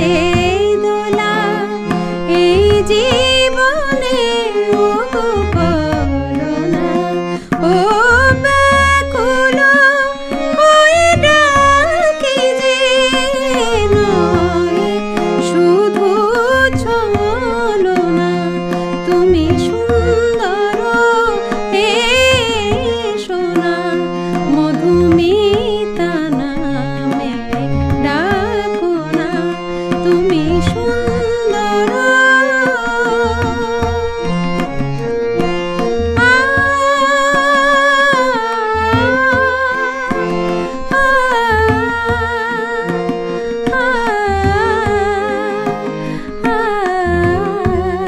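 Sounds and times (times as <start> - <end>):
woman singing: 0.0 - 34.8, 35.8 - 48.0
tabla drumming: 0.0 - 48.0.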